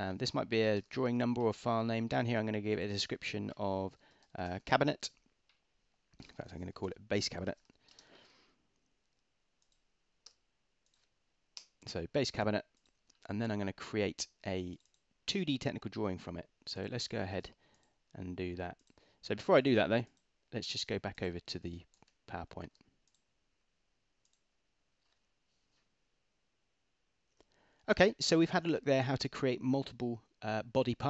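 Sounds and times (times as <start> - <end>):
keyboard typing clicks: 9.6 - 11.9.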